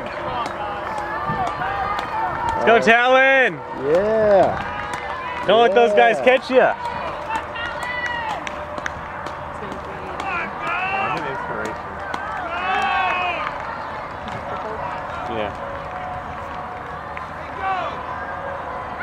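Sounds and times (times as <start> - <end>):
outdoor background noise: 0.0 - 19.0
spectators shouting encouragement: 0.0 - 19.0.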